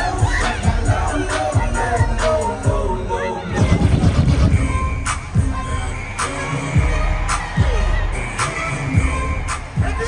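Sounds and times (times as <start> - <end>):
crowd shouting and cheering: 0.0 - 10.0
hip-hop music over sound system: 0.0 - 10.0
heavy kick drum: 3.6 - 5.8.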